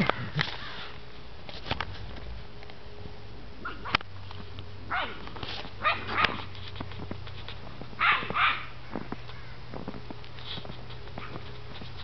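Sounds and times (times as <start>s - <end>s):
puppies yipping and barking: 5.8s - 6.6s, 8.0s - 8.8s.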